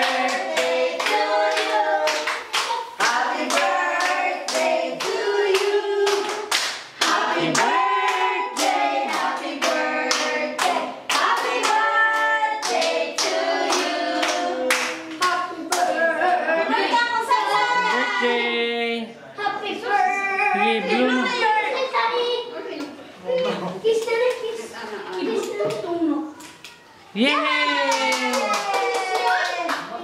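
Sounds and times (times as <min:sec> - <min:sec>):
people clapping: 0:00.0 - 0:16.4, 0:27.4 - 0:30.0
group singing: 0:00.0 - 0:18.7.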